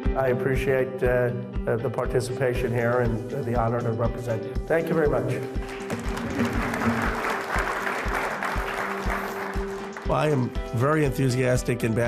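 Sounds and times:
audience applauding: 5.6 - 10.6.

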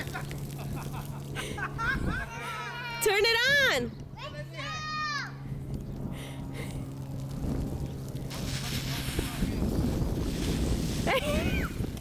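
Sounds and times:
hiss of sprinkler water spray: 8.2 - 12.0.

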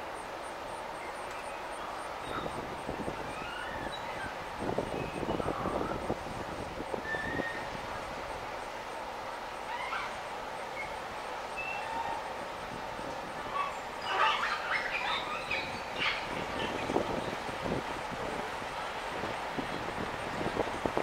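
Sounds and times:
outdoor background noise: 0.0 - 21.0.

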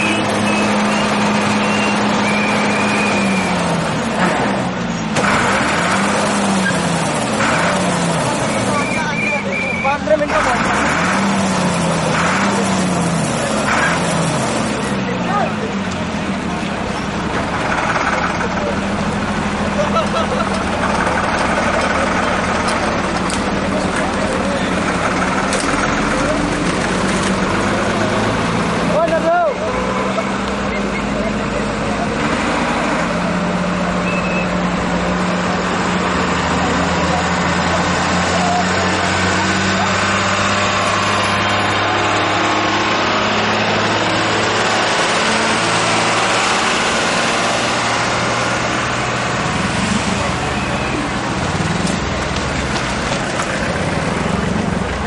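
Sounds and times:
many people talking: 0.0 - 55.0
road traffic: 0.0 - 55.0
vehicle engines running: 0.0 - 55.0.

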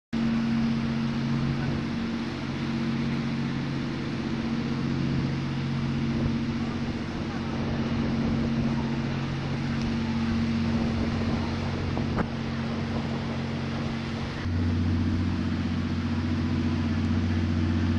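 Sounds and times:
motorboat engine running: 0.2 - 17.9
wind on microphone: 0.2 - 17.9.

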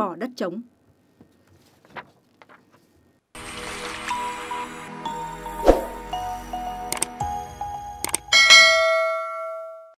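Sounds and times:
sharp clicks: 6.9 - 7.1, 8.0 - 8.3
bright bell-like chime: 8.3 - 10.0.

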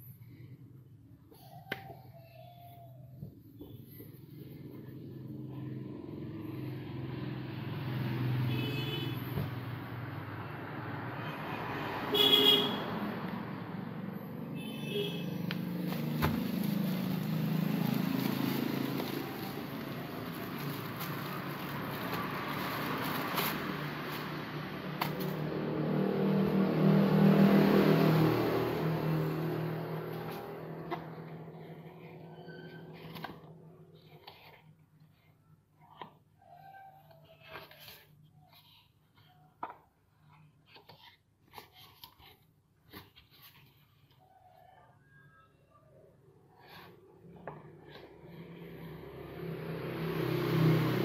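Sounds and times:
road traffic passing: 3.4 - 44.6, 46.2 - 51.0
vehicle horn toots: 8.4 - 9.4, 12.0 - 13.0, 14.5 - 15.5.

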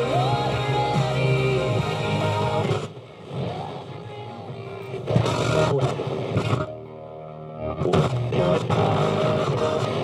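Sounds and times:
radio music: 0.0 - 10.0
snatches of radio stations: 0.0 - 10.0
radio static hiss: 0.6 - 10.0.

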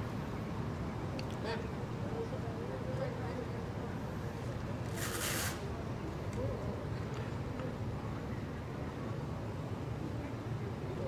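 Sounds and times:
short hiss: 4.9 - 5.7.

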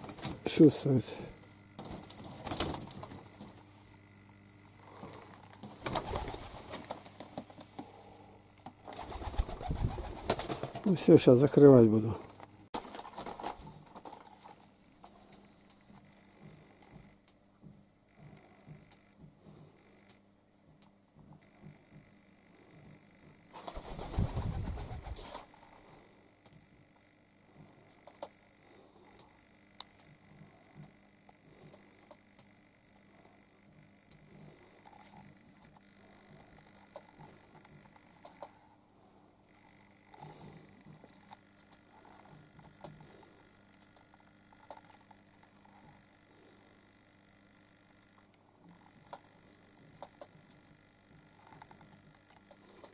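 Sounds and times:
pigeons cooing: 8.9 - 10.8.

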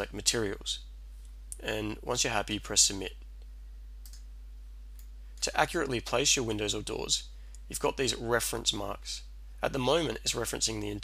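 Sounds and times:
steady low hum: 0.0 - 11.0
faint computer mouse click: 3.4 - 4.3.

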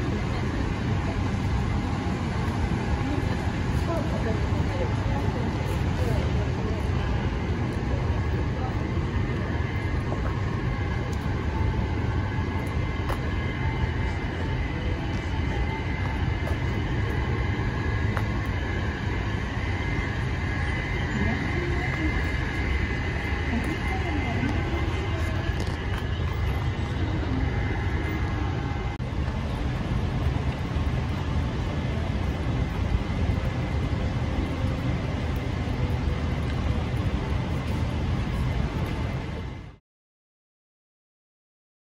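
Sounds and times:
faint voices: 0.0 - 39.8
low city rumble: 0.0 - 39.8.

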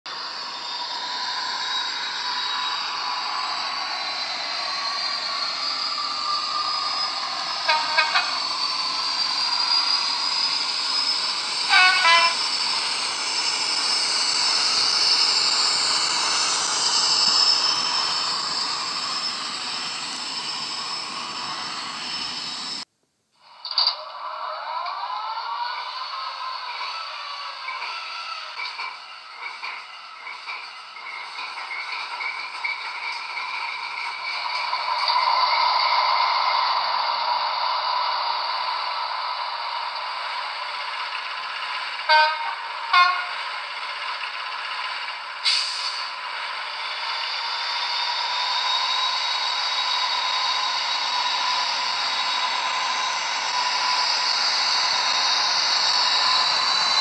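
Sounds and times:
model diesel locomotive engine: 0.0 - 57.0
locomotive horn blasts: 7.7 - 8.5, 11.7 - 12.4, 42.1 - 43.4.

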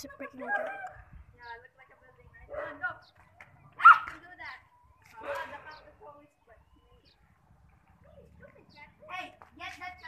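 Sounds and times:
dog barking: 2.5 - 2.8, 3.8 - 4.1.

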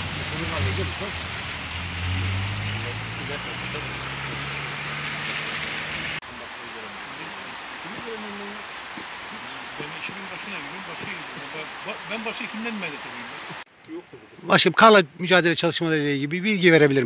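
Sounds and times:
outdoor hiss: 0.0 - 16.7.

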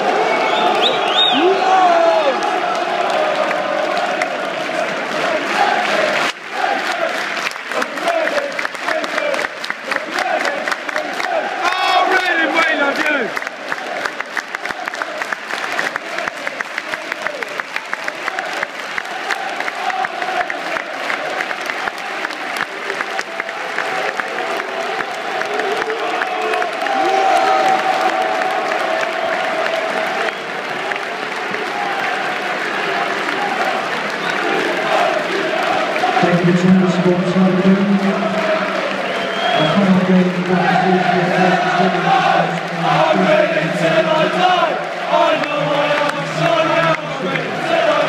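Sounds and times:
crowd singing: 0.0 - 15.4, 18.1 - 22.5, 30.8 - 48.0
crowd voices: 0.0 - 48.0
fast rhythmic clapping: 2.3 - 48.0.

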